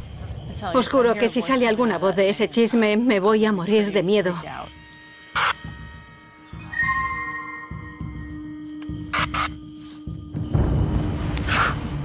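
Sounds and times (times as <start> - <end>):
eerie low drone music: 4.5 - 12.0.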